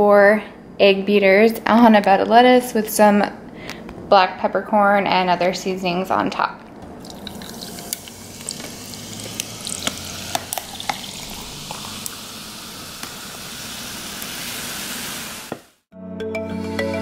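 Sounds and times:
drink fizzing and splashing: 0:06.9 - 0:15.5
ice clicking: 0:07.0 - 0:12.2.

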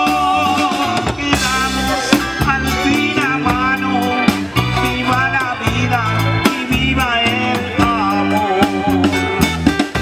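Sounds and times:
drum kit: 0:00.0 - 0:10.0
electric bass: 0:00.0 - 0:10.0
man singing: 0:00.0 - 0:10.0.

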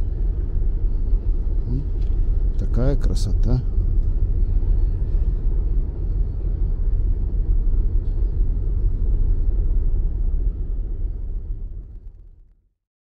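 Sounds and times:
low outdoor rumble: 0:00.0 - 0:12.8.

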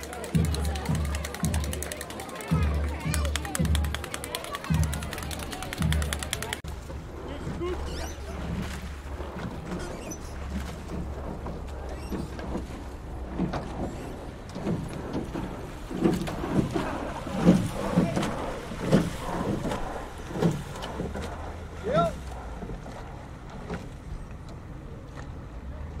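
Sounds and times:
oar strokes knocking and splashing: 0:00.0 - 0:25.7.

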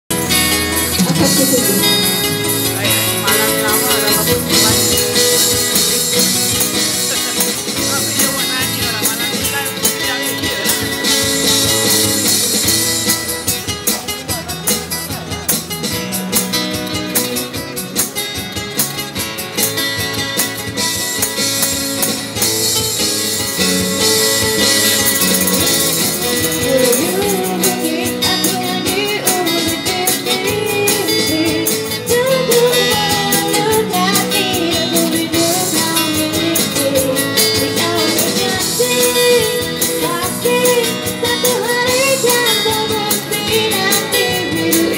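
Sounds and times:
acoustic guitars strumming: 0:00.1 - 0:44.9
tambourine rhythm: 0:00.2 - 0:44.9
girl singing through amplifier: 0:00.8 - 0:06.9, 0:25.7 - 0:44.9.

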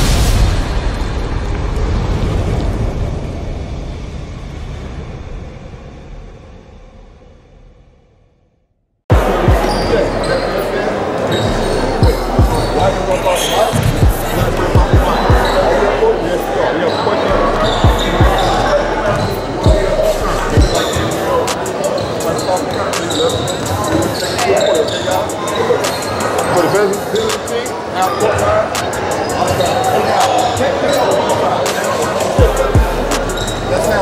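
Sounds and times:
murmur of voices: 0:09.1 - 0:34.0.

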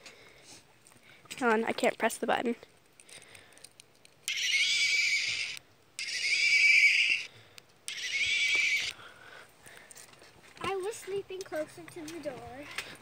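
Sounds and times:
recorded horse whinny from toy: 0:04.3 - 0:07.3, 0:07.9 - 0:08.9.

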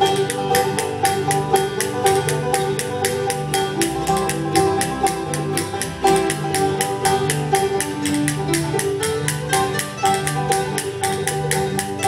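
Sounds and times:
acoustic guitar picking: 0:00.0 - 0:12.0
banjo: 0:00.0 - 0:12.0
mandolin: 0:00.0 - 0:12.0.

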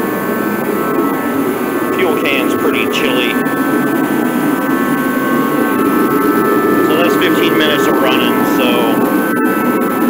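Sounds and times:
heater fan and burner rushing: 0:00.0 - 0:10.0
high hums: 0:00.0 - 0:10.0.

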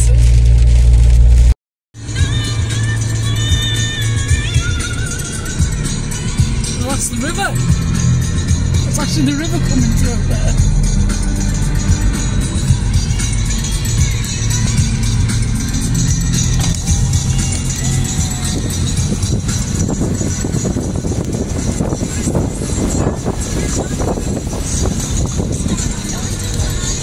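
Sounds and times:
music playing: 0:00.0 - 0:27.0
wheels rushing through water: 0:00.0 - 0:27.0
van driving through floodwater: 0:02.0 - 0:27.0.

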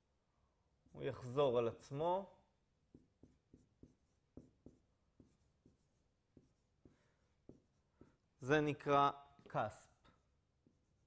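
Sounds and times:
marker writing on whiteboard: 0:02.8 - 0:08.5, 0:09.4 - 0:11.0.

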